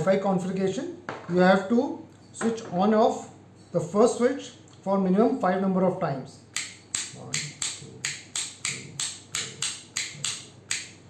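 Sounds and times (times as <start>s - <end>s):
wall switch clicking: 6.6s - 11.0s.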